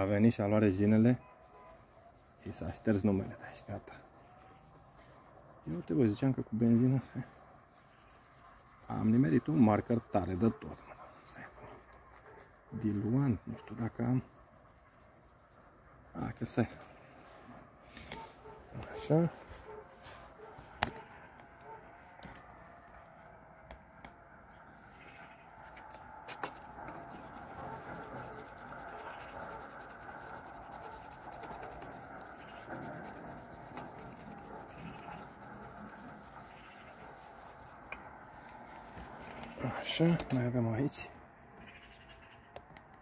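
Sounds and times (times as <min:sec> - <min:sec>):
hand scrubbing metal plate: 0:00.0 - 0:11.4, 0:26.4 - 0:38.2
person speaking: 0:00.0 - 0:14.4, 0:16.1 - 0:17.1, 0:18.2 - 0:20.0.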